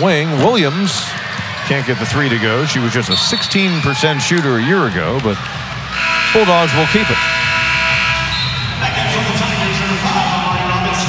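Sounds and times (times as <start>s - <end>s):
crowd noise: 0.0s - 11.0s
arena horn sounding: 5.9s - 8.9s.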